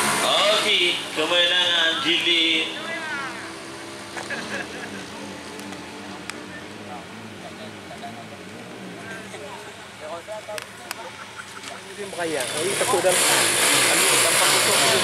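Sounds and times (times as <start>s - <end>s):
distant motorcycle engines: 0.0s - 15.0s
murmur of crowd voices: 0.0s - 15.0s.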